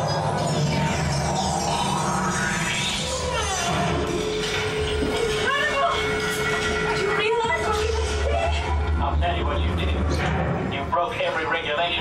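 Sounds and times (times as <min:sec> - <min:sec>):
deep rumble: 0:00.0 - 0:12.0
steady hum: 0:00.0 - 0:12.0.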